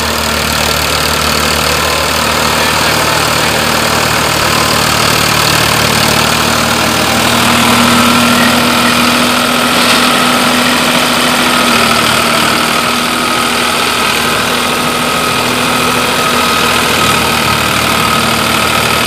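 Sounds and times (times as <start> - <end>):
tractor diesel engine under load: 0.0 - 19.0.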